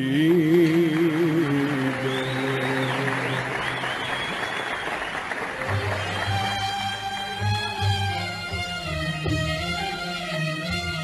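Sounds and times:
audience applauding: 0.2 - 8.6.

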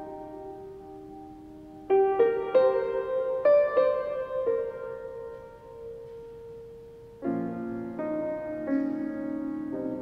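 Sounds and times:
soft piano note: 0.0 - 10.0.

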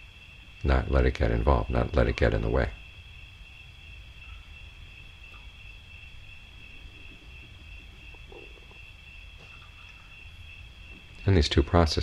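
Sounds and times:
crickets trilling: 0.0 - 12.0
low background rumble: 0.0 - 12.0.

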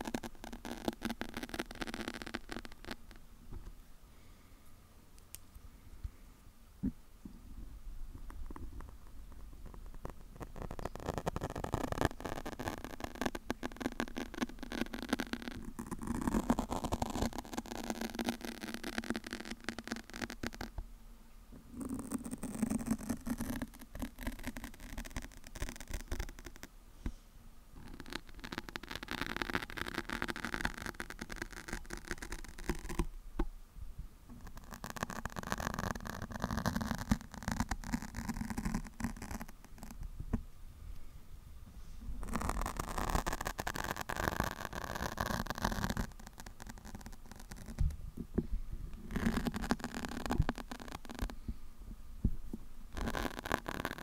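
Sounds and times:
fingernails scratching microphone windscreen: 0.0 - 3.2, 8.2 - 20.7, 21.8 - 26.7, 27.8 - 33.1, 34.4 - 40.1, 42.2 - 48.0, 49.0 - 51.4, 52.9 - 54.0.

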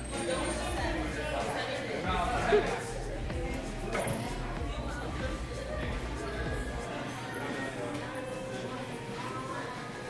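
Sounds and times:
background music: 0.0 - 10.0
indistinct voices: 0.0 - 10.0.

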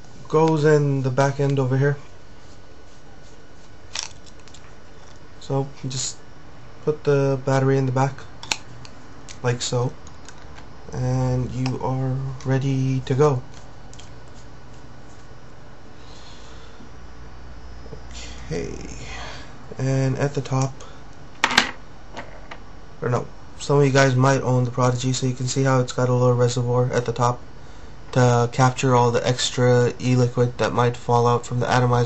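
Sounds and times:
low electrical hum: 0.0 - 32.0
steady background hiss: 0.0 - 32.0
background hiss: 14.1 - 22.0.

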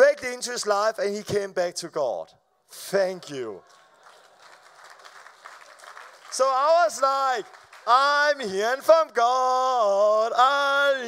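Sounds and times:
light audience applause: 3.0 - 8.9.

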